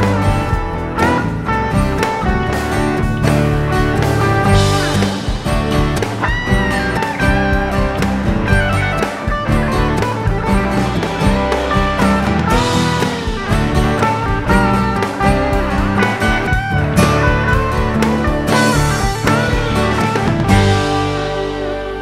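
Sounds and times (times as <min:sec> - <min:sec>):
acoustic guitar strumming: 0:00.0 - 0:22.0
band with steady beat and bass: 0:00.0 - 0:22.0
lead line with bent notes: 0:00.0 - 0:22.0.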